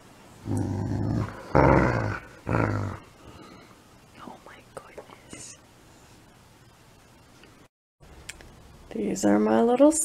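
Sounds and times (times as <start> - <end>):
dog growling in play: 0.4 - 3.2.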